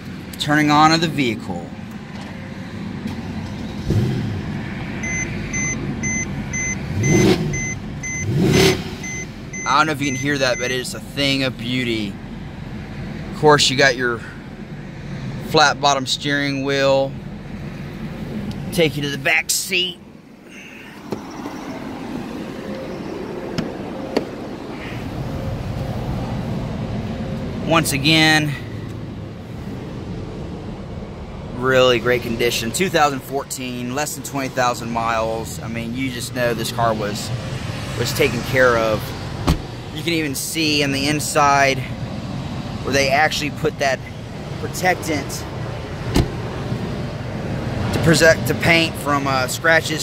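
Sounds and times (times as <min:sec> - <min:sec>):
car engine idling: 0:00.0 - 0:50.0
car engine starting and revving: 0:00.8 - 0:13.5
dashboard warning chime beeping: 0:05.0 - 0:10.9.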